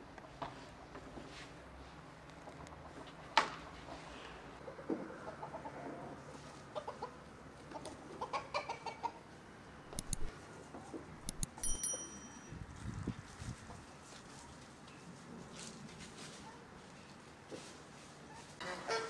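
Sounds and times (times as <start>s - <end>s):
hens clucking: 3.8s - 9.4s
sharp clicks: 9.9s - 10.3s, 11.2s - 11.7s
brief high ringing tone: 11.5s - 12.7s.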